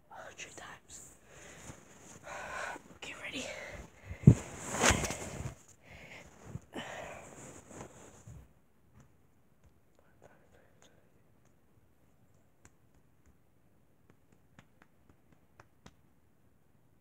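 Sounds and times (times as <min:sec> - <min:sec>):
person whispering: 0:00.0 - 0:01.2, 0:02.2 - 0:04.0, 0:10.0 - 0:11.2.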